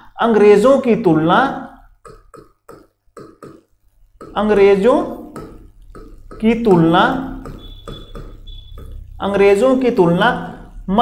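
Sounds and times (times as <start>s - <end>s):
marker scraping on whiteboard: 2.0s - 9.6s.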